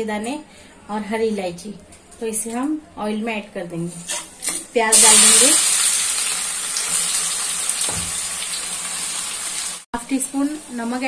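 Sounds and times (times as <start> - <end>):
onions sizzling in hot oil: 4.9 - 11.0.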